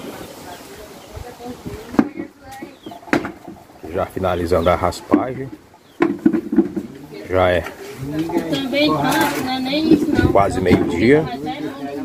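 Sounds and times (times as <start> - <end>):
faint voices: 0.0 - 12.0
cassava scraping and knocking: 4.9 - 11.1.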